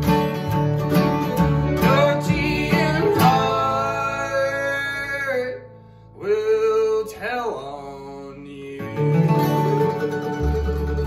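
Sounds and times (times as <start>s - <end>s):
acoustic string band: 0.0s - 7.0s, 7.9s - 11.0s
guitars strumming: 0.0s - 11.0s
vocal harmonies: 1.6s - 10.1s.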